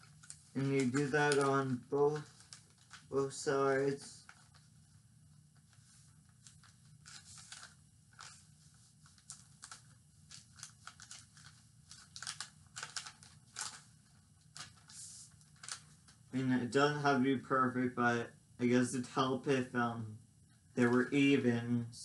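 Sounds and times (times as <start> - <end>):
paper rustling and crinkling: 0.0 - 4.9, 5.5 - 16.3
faint low hum: 0.0 - 22.0.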